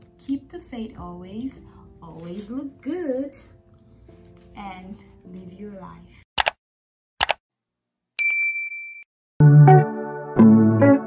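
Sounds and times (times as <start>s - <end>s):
notification bell ding: 8.2s - 9.1s
electric piano chords: 9.4s - 11.0s.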